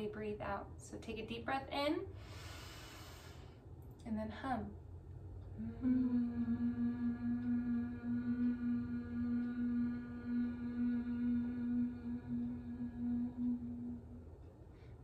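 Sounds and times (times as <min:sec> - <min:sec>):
person humming: 0:05.5 - 0:14.4.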